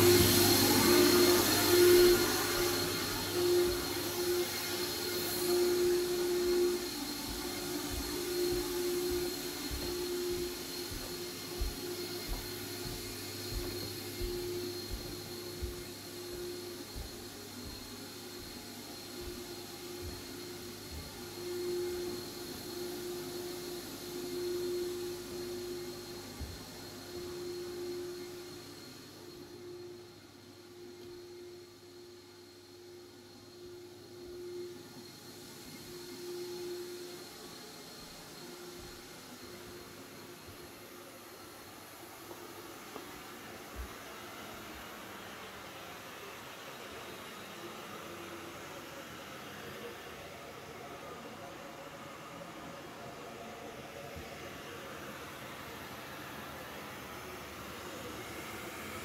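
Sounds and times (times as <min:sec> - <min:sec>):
air mover fan hissing and humming: 0:00.0 - 0:59.0.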